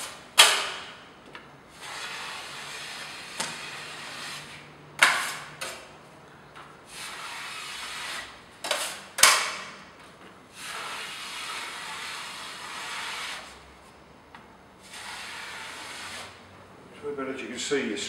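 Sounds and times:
steel blade scraping joint compound: 0:01.8 - 0:05.9, 0:10.6 - 0:13.6, 0:14.8 - 0:16.4.

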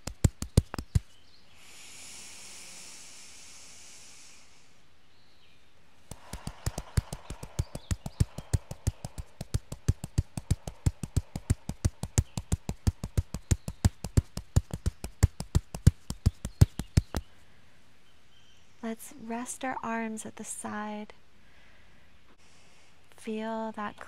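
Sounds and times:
fists tapping on chest: 0:00.0 - 0:01.1, 0:06.1 - 0:17.3.

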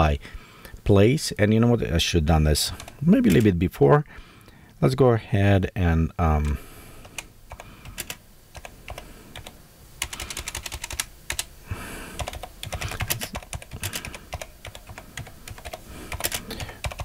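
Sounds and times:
typing on computer keyboard: 0:07.0 - 0:11.5, 0:12.2 - 0:17.0.

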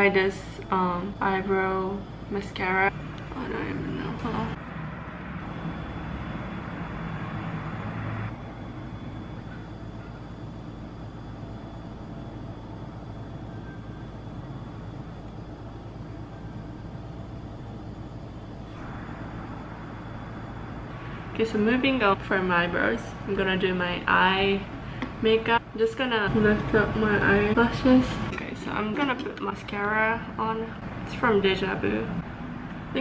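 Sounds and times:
low room rumble: 0:00.0 - 0:33.0.

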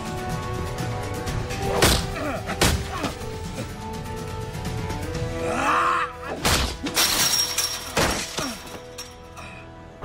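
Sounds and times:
background score music: 0:00.0 - 0:10.0.

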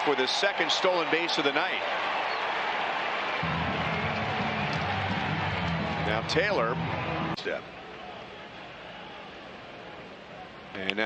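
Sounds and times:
ballpark crowd noise: 0:00.0 - 0:11.0
stadium music with bass beat: 0:03.4 - 0:07.4.

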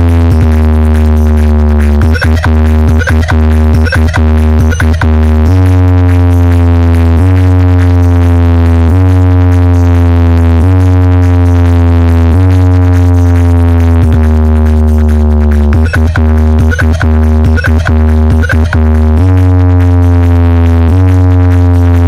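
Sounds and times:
loud electronic dance music: 0:00.0 - 0:22.0.

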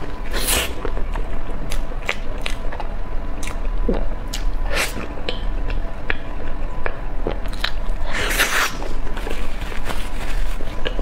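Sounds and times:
person chewing dessert: 0:00.0 - 0:09.6.

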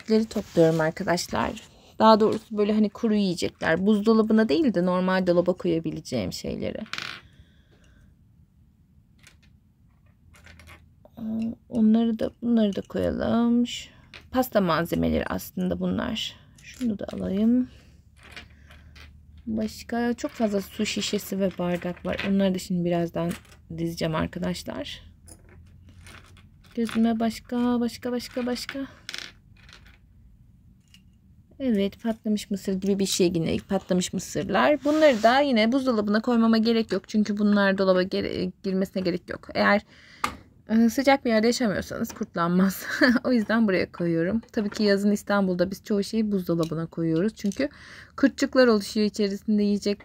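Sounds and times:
faint handling noise: 0:00.0 - 0:03.9
plastic toys clattering: 0:09.2 - 0:11.5, 0:18.2 - 0:22.4, 0:23.1 - 0:23.7, 0:25.3 - 0:30.1.

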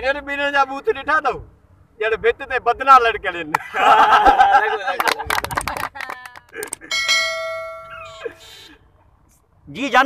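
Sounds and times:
bell-like ding: 0:06.9 - 0:08.3.

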